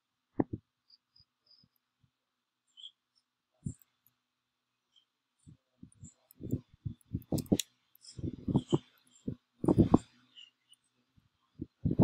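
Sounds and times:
faint high chirps: 0.8 - 1.9, 2.6 - 4.1, 4.8 - 6.6, 7.9 - 11.8.

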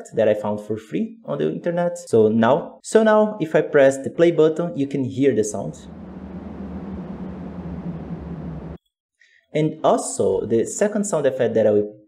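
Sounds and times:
steady wind noise: 5.8 - 8.8.

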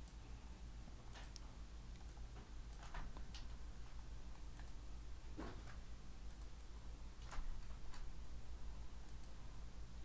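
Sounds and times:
low steady hum: 0.0 - 10.0
keyboard and mouse clicks: 1.1 - 3.6, 4.3 - 4.8, 7.2 - 8.1, 9.0 - 9.4.

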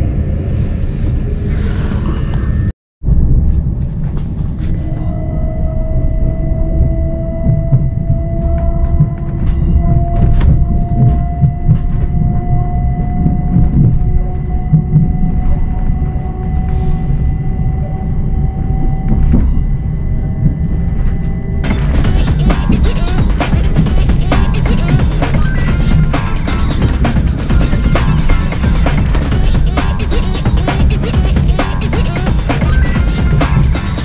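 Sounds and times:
train wheels rumbling on track: 6.5 - 17.5, 18.8 - 34.0.

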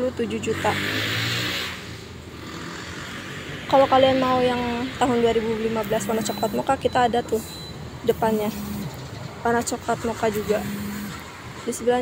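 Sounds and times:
motor vehicle passing by: 0.0 - 6.7, 7.3 - 12.0
faint traffic background: 0.0 - 12.0.

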